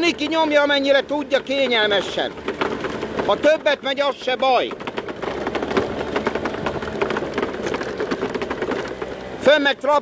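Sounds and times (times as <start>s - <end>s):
small vehicle engine: 0.0s - 10.0s
loud rattle: 0.3s - 9.5s.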